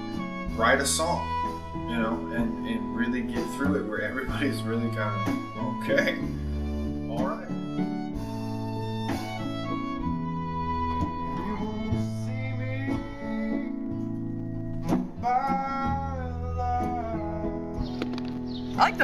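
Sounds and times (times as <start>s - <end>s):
fiddle sliding notes: 0.0s - 14.2s
guitar playing: 0.0s - 19.0s
keyboard chords: 0.0s - 19.0s.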